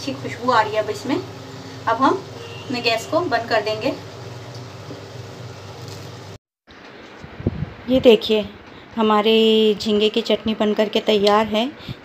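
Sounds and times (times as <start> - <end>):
pan simmering hiss: 0.0 - 6.4.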